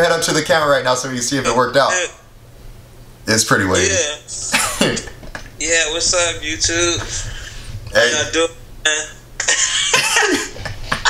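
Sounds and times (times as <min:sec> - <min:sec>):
man laughing hard: 0:09.4 - 0:11.0.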